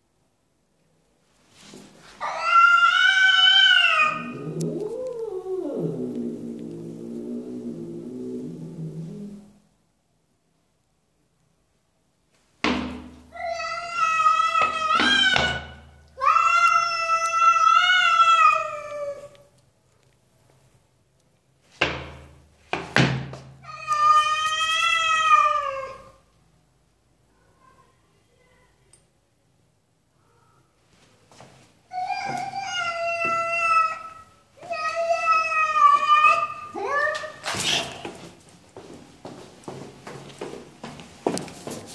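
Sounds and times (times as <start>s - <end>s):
cat yowling: 2.2s - 9.6s, 13.4s - 19.3s, 23.6s - 26.2s, 31.9s - 38.0s.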